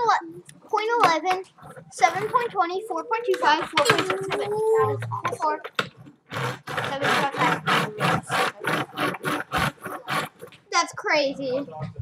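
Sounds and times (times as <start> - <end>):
child babbling: 2.0 - 5.6
child's sliding vocal sound: 3.2 - 5.6, 6.6 - 10.4.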